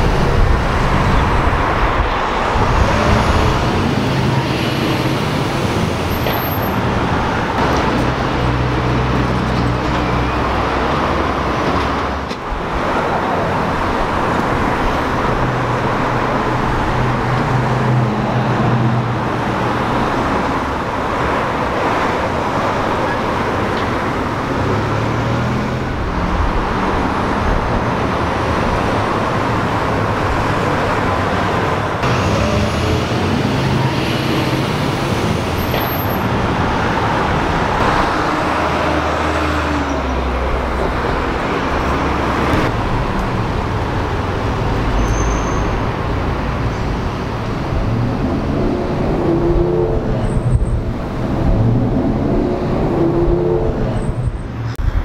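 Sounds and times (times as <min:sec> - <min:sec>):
engine and tyre rumble: 0:00.0 - 0:55.0
road traffic passing: 0:00.0 - 0:55.0.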